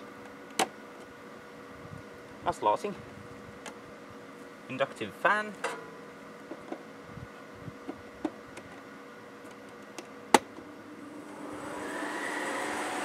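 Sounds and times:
fan motor whine and rushing air: 0.0s - 13.0s.

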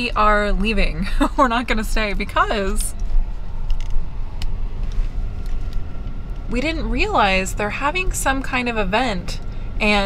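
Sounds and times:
car rolling low rumble: 0.0s - 10.0s.

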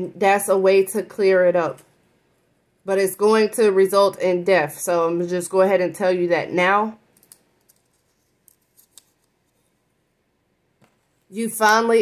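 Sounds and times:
paper sticky notes rustling: 7.2s - 9.7s.

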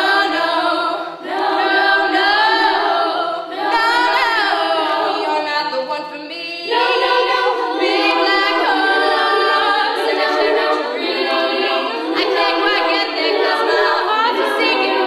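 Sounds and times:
female vocal group singing a cappella: 0.0s - 15.0s.

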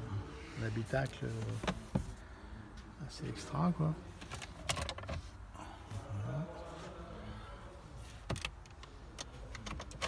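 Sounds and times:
light clicks and taps on car trim: 8.2s - 10.0s.

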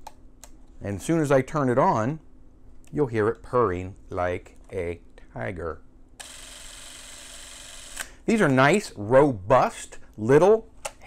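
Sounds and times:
cine camera motor whirring: 6.2s - 8.2s.

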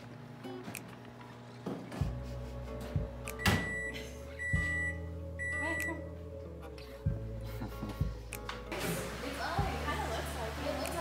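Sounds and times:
background music: 1.8s - 11.0s
microwave oven beeping: 3.3s - 6.0s.

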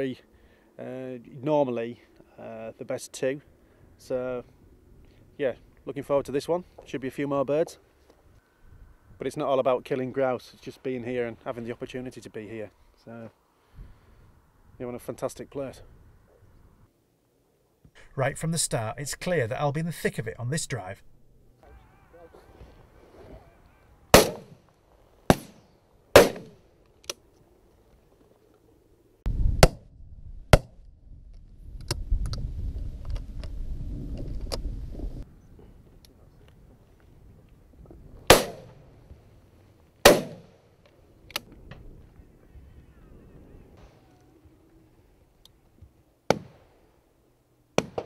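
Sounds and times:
shotguns firing: 24.1s - 24.6s, 25.3s - 25.6s, 26.2s - 26.6s, 38.3s - 38.8s, 40.0s - 40.6s.

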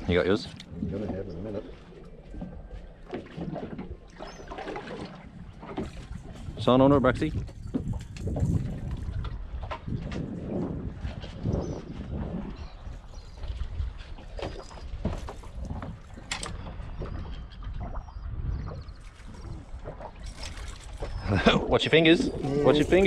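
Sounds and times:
water lapping against boat hull: 0.0s - 23.0s
wind rumbling on microphone: 0.0s - 23.0s.

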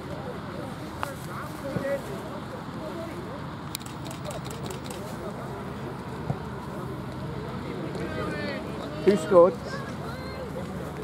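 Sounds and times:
distant shouts and chatter: 0.0s - 11.0s.

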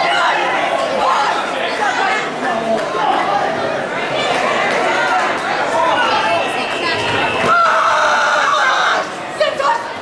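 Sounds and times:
crowd chatter: 0.0s - 10.0s
long held shout: 7.5s - 9.1s.

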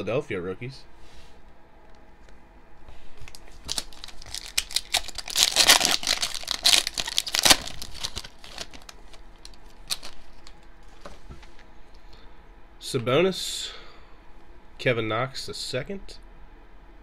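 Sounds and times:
plastic wrapper tearing and crinkling: 3.2s - 10.6s.

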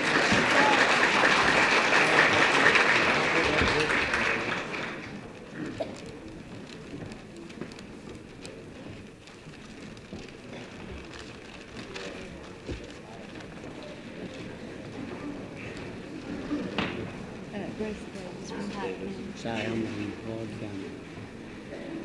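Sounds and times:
audience applauding: 0.0s - 6.4s
low room murmur: 0.0s - 22.0s.

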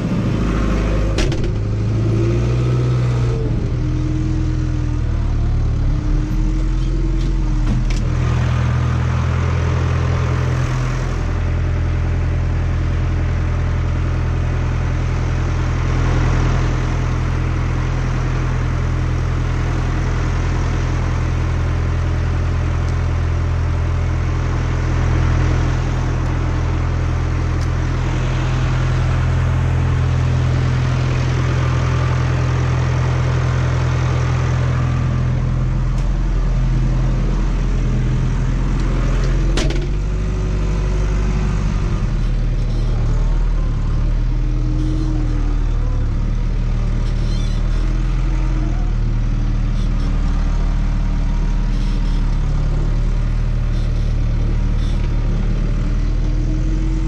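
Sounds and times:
tractor diesel engine idling: 0.0s - 57.0s.

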